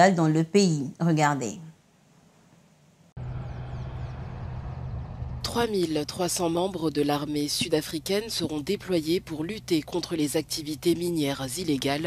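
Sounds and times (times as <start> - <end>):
armoured vehicle engine hum: 3.2 - 12.0.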